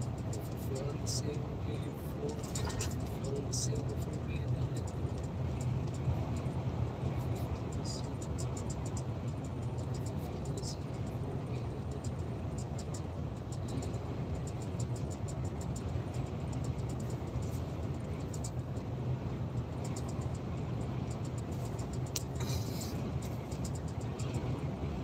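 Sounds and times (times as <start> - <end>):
truck engine and road drone: 0.0 - 25.0
faint clicks: 19.6 - 24.4.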